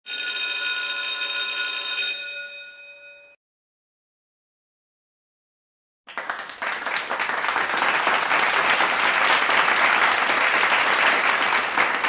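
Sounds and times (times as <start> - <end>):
bell-like ringing: 0.1 - 3.4.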